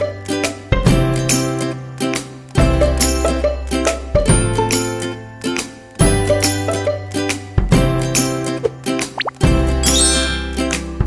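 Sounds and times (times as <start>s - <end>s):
plucked string background music: 0.0s - 11.0s
rising bloop pop effect: 9.2s - 10.6s.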